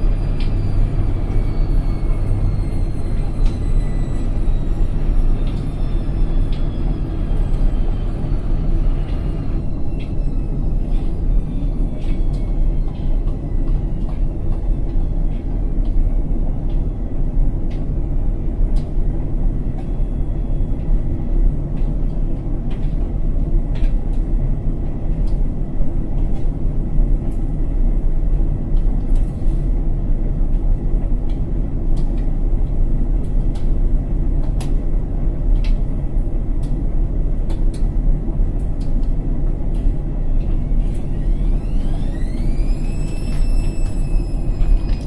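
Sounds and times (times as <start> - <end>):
washing machine spinning: 0.0 - 45.0.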